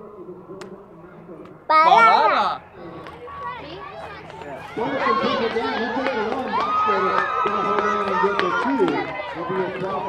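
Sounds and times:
chatter of children and adults: 0.0 - 10.0.

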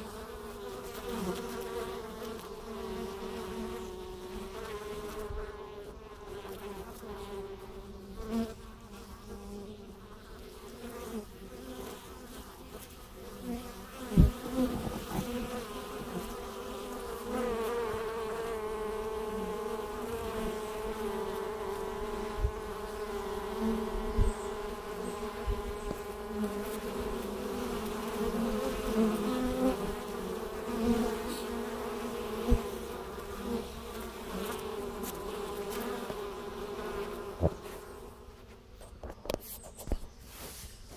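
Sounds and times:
bees buzzing: 0.0 - 40.9.

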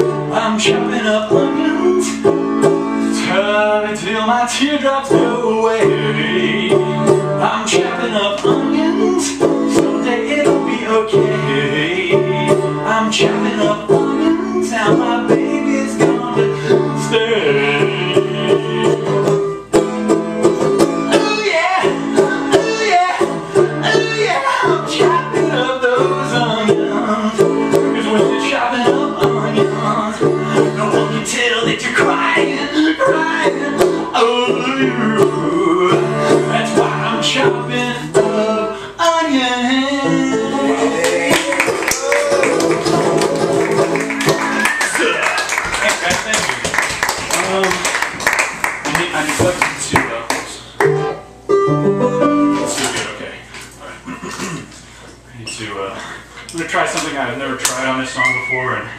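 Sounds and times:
banjo plucked notes: 5.1 - 31.2, 50.8 - 52.9.

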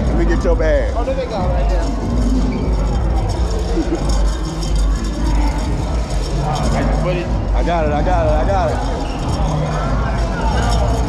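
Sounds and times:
indistinct talk of people: 0.0 - 11.0
music: 0.0 - 11.0.

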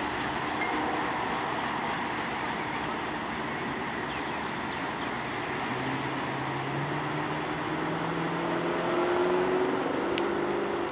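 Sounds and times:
train wheels rumbling on track: 0.0 - 10.9.

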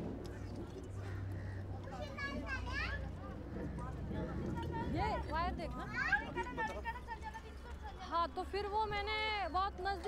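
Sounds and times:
children chattering and calling out: 0.8 - 8.3.

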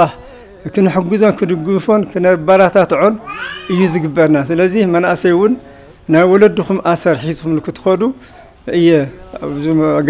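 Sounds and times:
drawn-out vocal sound: 0.0 - 1.7
man speaking: 0.0 - 10.0.

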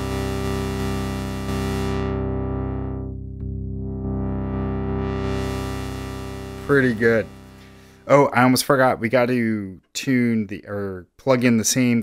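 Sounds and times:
synthesizer sustained chords: 0.0 - 8.5.

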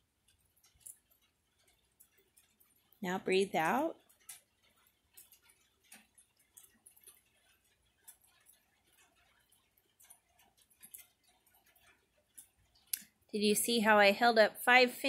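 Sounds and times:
rainwater dripping: 0.0 - 15.0.

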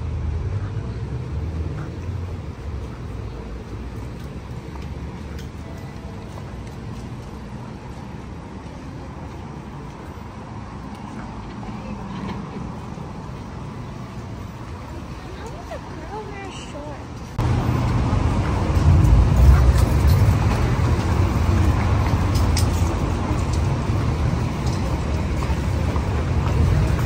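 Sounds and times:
street traffic hum: 0.0 - 27.0.

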